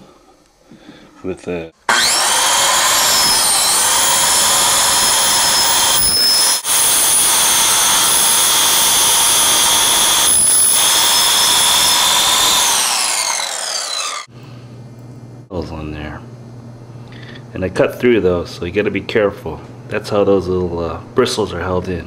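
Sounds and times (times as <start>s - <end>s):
circular saw cutting wood: 1.9s - 14.3s.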